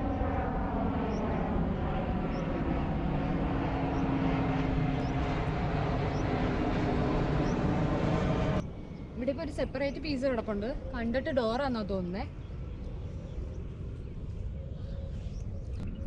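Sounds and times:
jet airliner flying overhead: 0.0 - 16.0.

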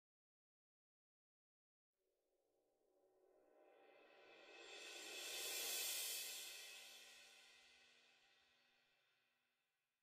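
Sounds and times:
orchestral cymbal swell: 3.2 - 8.6.

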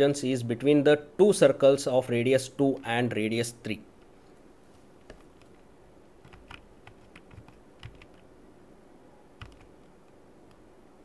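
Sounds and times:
computer keys clicking: 6.2 - 8.3, 9.4 - 9.9.

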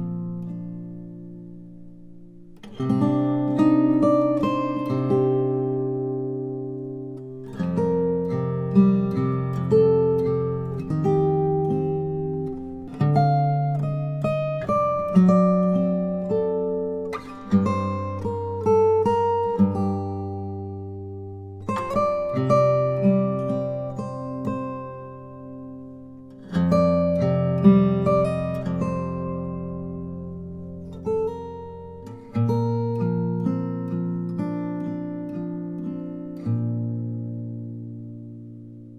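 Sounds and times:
fingerstyle acoustic guitar: 0.0 - 38.9.

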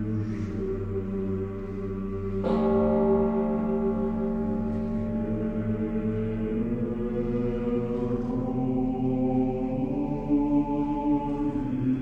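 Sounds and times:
steady low drone: 0.0 - 12.0.

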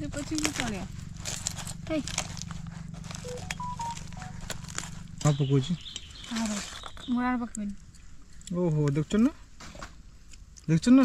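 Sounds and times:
steady low hum: 0.0 - 6.4.

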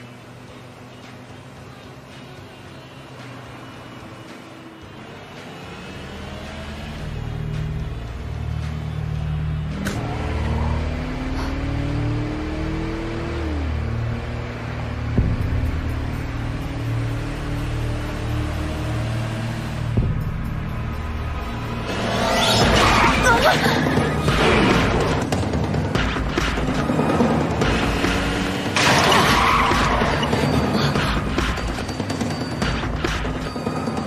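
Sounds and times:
suspense film score drone: 0.0 - 34.0
car engine running: 5.9 - 34.0.

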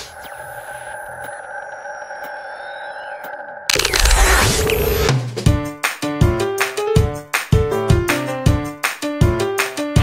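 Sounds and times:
faint high gliding tones: 0.0 - 4.8
sustained electronic ringing tone: 0.0 - 5.1.

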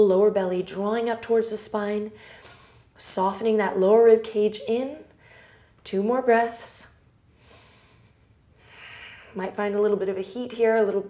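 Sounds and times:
woman breathing through nose: 7.4 - 9.4.

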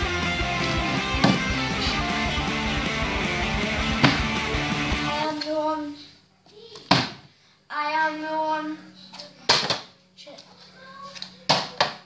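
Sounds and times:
child's quiet voice: 5.2 - 6.9, 10.2 - 12.0.

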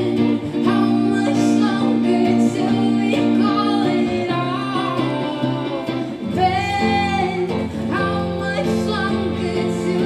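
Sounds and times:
electric guitar: 0.0 - 10.0
woman singing: 0.0 - 10.0.

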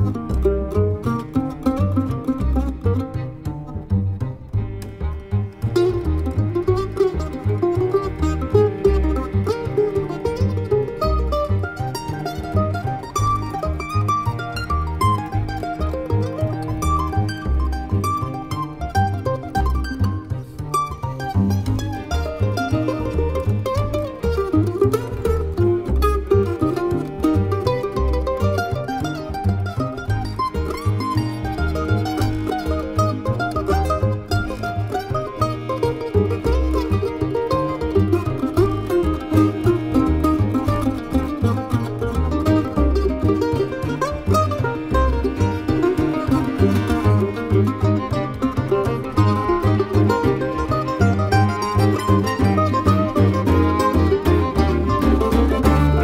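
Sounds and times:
cello: 0.0 - 56.0
mandolin picking melody: 0.0 - 56.0
upright bass: 0.0 - 56.0.

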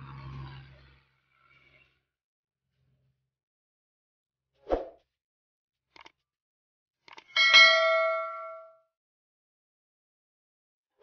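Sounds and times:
bell chime: 7.4 - 8.8.

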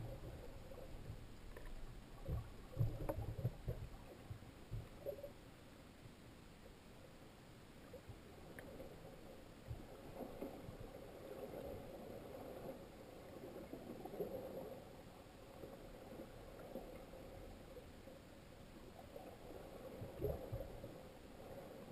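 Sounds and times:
underwater moving water and bubbles: 0.0 - 21.9.

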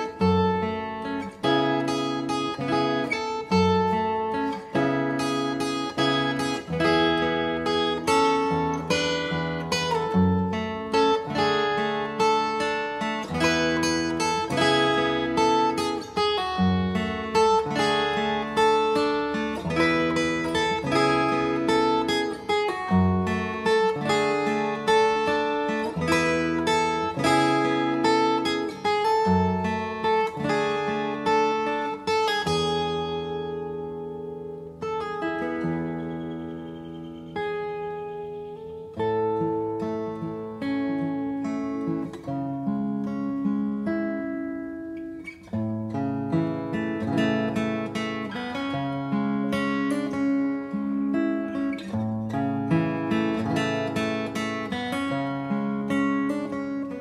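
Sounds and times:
fingerstyle acoustic guitar: 0.0 - 57.0.

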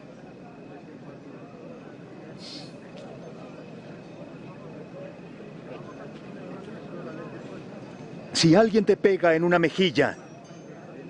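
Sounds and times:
murmur of crowd voices: 0.0 - 11.0
brief high hiss: 2.4 - 2.8.

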